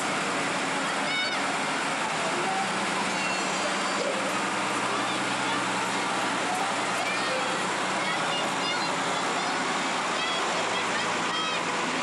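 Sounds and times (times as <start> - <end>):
crowd noise: 0.0 - 12.0
tractor diesel engine running: 0.0 - 12.0.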